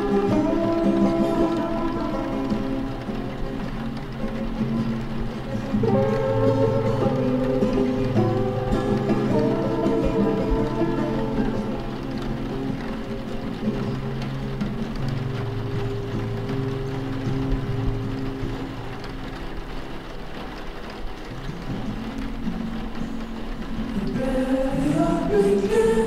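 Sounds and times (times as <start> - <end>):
soft background music: 0.0 - 26.0
steady rain: 0.0 - 26.0.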